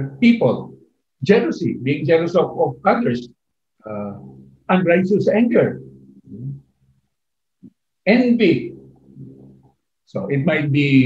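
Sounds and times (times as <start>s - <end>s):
short low vocal sound: 6.2s - 6.7s.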